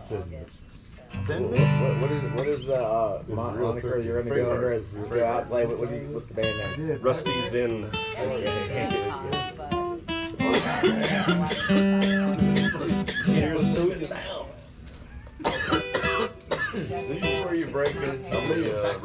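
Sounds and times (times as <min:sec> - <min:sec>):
acoustic guitar picking: 0:01.1 - 0:03.6, 0:06.3 - 0:14.4, 0:15.4 - 0:19.0
voices talking: 0:01.1 - 0:19.0.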